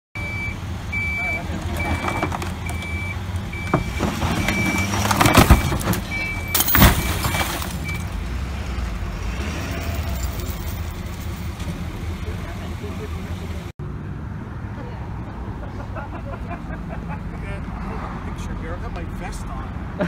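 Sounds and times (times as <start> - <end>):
vehicle warning beeper: 0.2 - 8.1
idling vehicle engines rumbling: 0.2 - 20.0.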